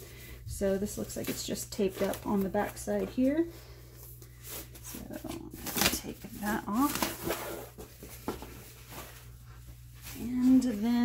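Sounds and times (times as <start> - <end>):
plastic bag rustling: 0.3 - 3.5, 4.4 - 11.0.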